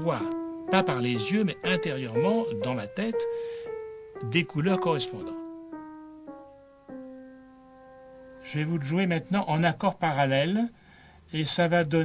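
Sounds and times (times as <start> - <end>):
grand piano chords: 0.0 - 10.3.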